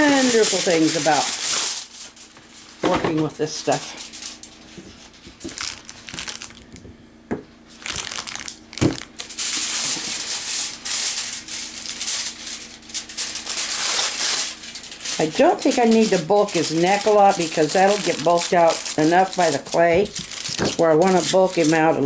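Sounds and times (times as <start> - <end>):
aluminium foil crinkling: 0.0 - 6.8, 7.7 - 22.0.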